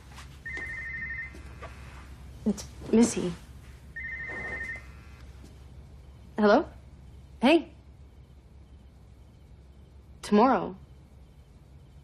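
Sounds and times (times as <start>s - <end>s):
phone ringtone trill: 0.5s - 1.4s, 4.0s - 4.9s.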